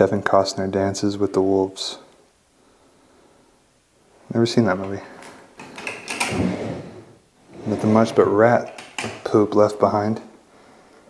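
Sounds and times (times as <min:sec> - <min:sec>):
wooden drawer scraping open: 0:05.8 - 0:08.4.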